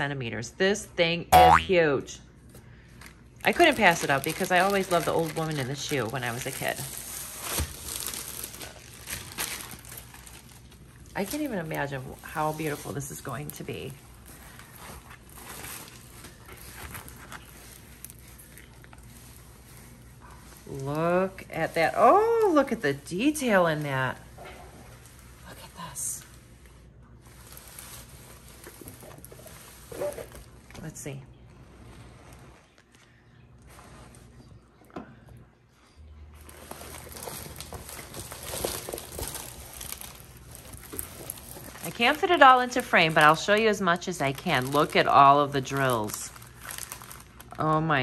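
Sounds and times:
low background hum: 0.0 - 48.0
plastic sleeve crinkling: 3.0 - 30.7, 36.4 - 48.0.

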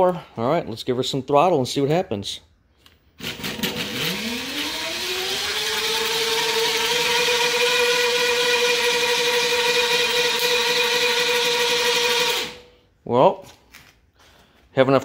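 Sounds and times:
electric motor whine: 3.7 - 12.6.

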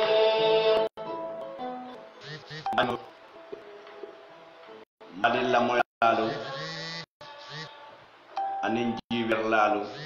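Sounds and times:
man talking into microphone: 2.7 - 3.1.

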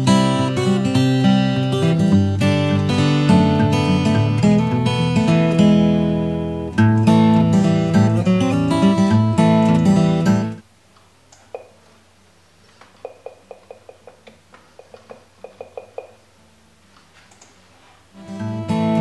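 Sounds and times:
strummed acoustic guitar: 0.0 - 10.6, 18.2 - 19.0.

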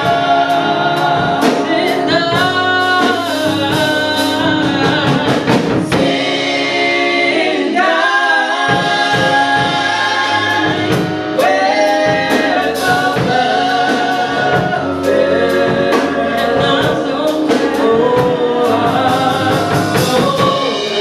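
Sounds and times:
bass: 0.0 - 21.0
drum kit: 0.0 - 21.0
keyboard: 0.0 - 21.0
women singing in harmony: 0.0 - 21.0.

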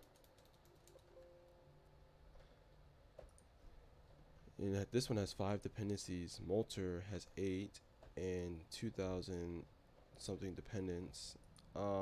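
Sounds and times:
computer keyboard typing: 0.0 - 1.6.

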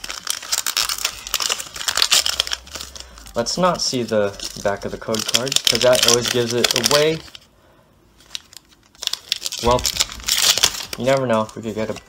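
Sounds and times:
foil wrapper crinkling and tearing: 0.0 - 7.5, 8.2 - 12.0.

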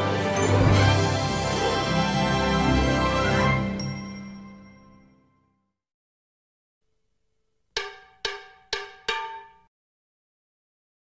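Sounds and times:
ringing metallic percussion notes: 7.8 - 9.7.

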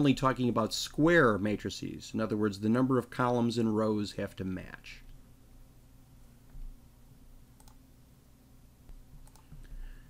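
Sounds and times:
low electrical hum: 0.0 - 10.0
computer clicks: 7.6 - 7.8, 9.2 - 9.6.

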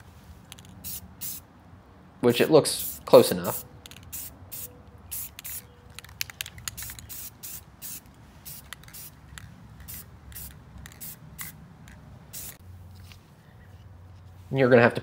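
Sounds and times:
spray paint can hissing bursts: 0.5 - 1.4, 2.8 - 12.6.

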